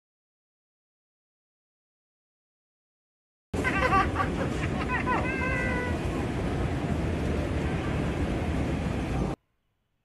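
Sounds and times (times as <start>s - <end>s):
moving walkway rumble: 3.6s - 9.4s.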